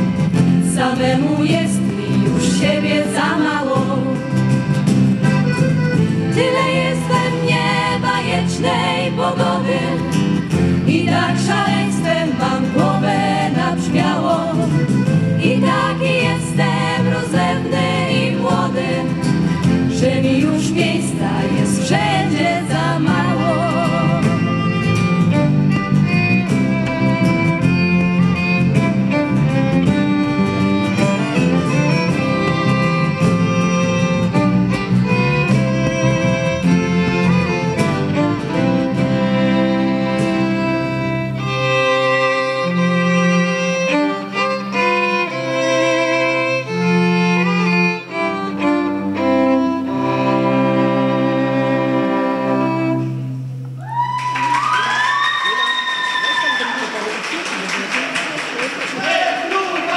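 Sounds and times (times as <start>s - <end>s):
violins playing folk tune: 0.0s - 53.8s
whoops and shouts: 53.8s - 57.0s
audience cheering and applauding: 53.8s - 59.9s.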